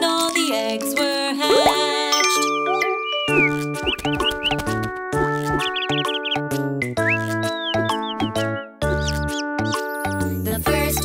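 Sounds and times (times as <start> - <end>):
children's song backing music: 0.0 - 4.8, 9.7 - 11.0
high squeaky bird chirps: 1.5 - 10.3.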